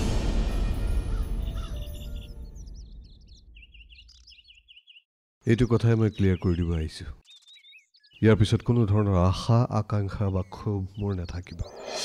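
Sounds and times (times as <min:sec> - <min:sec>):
background music: 0:00.0 - 0:02.8
birds chirping: 0:00.5 - 0:12.0.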